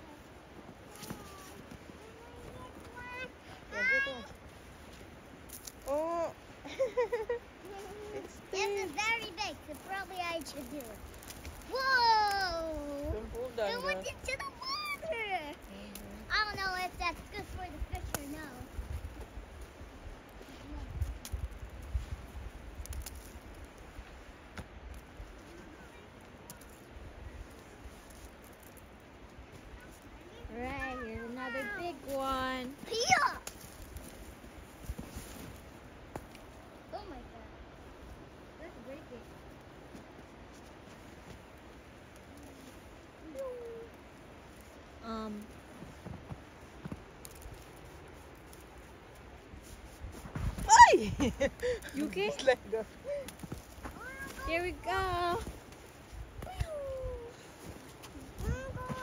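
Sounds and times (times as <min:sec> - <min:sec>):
faint outdoor background: 0:00.0 - 0:59.0
laughter: 0:06.6 - 0:07.5, 0:51.0 - 0:51.9.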